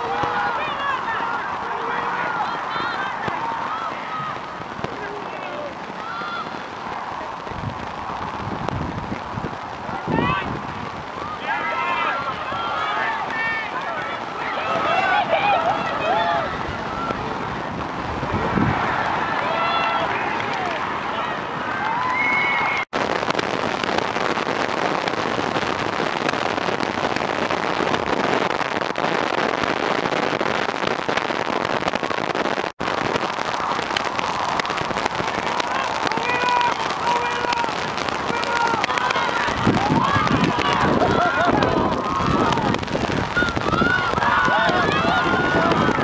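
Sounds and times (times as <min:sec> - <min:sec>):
players and spectators shouting: 0:00.0 - 0:08.3, 0:09.7 - 0:22.9, 0:32.9 - 0:46.0
wind buffeting microphone: 0:00.0 - 0:46.0.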